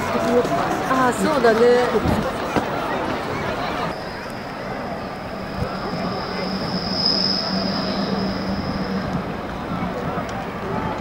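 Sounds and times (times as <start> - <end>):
electric train whine: 0.0 - 11.0
murmur of voices: 0.0 - 11.0.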